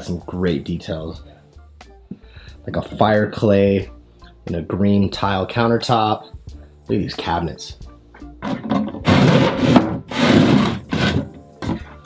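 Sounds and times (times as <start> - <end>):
sliding cabinet doors scraping: 8.4 - 12.0.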